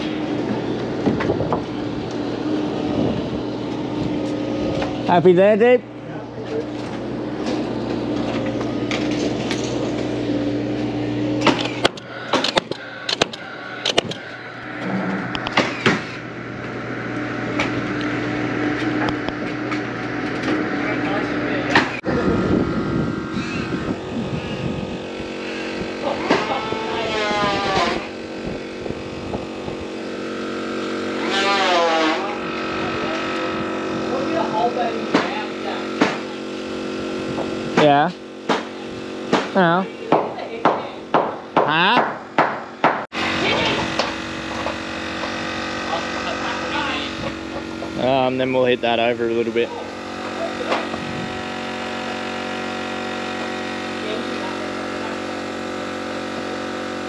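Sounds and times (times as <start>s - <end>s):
steady background hum: 0.0s - 57.0s.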